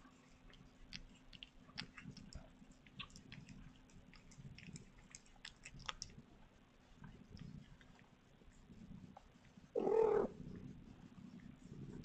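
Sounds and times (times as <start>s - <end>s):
cat meowing: 9.8s - 10.3s.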